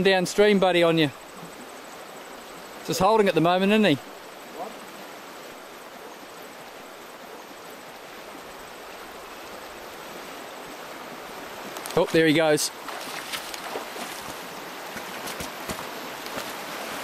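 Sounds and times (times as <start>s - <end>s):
river water rushing over stones: 0.0s - 17.0s.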